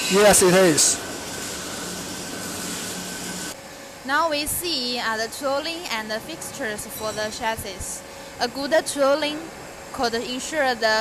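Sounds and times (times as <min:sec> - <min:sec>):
arc welder hissing: 0:00.0 - 0:09.5
workshop background: 0:00.0 - 0:11.0.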